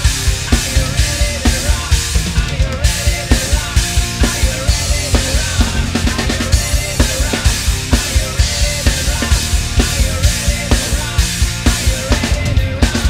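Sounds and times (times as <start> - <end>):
recorded rock song: 0.0 - 13.0
rock drum kit beat: 0.0 - 13.0.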